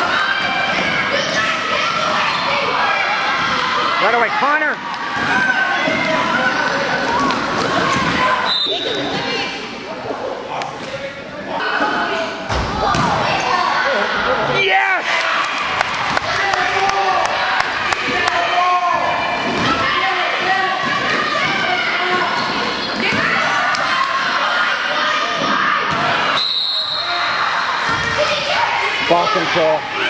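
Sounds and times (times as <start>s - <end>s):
echoing crowd voices and shouts: 0.0s - 30.0s.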